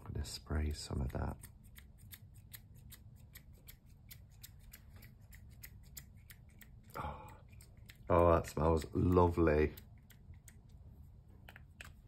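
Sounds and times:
low steady hum: 0.0s - 12.0s
rapid regular ticking: 1.0s - 10.8s.

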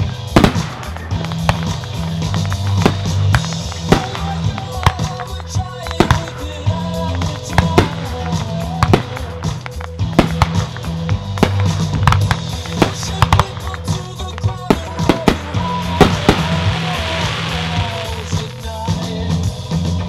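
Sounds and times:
fireworks bangs and pops: 0.0s - 19.6s.

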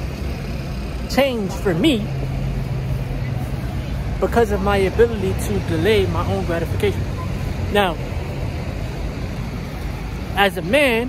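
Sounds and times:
city traffic hum: 0.0s - 11.0s.

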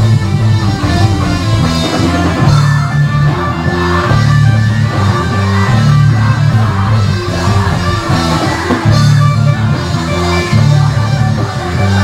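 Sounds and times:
rock band playing heavy riff: 0.0s - 12.0s.

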